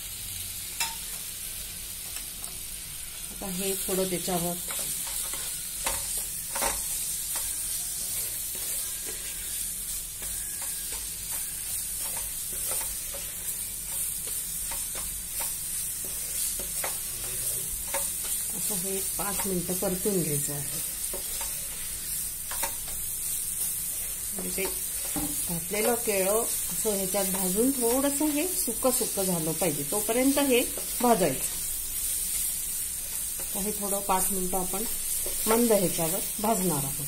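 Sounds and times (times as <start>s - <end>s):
steady sizzle: 0.0s - 37.0s
wooden spatula scraping pan: 4.6s - 19.6s.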